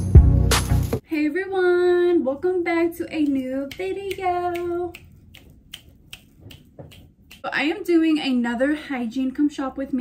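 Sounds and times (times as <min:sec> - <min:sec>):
finger snaps: 0:03.2 - 0:07.4.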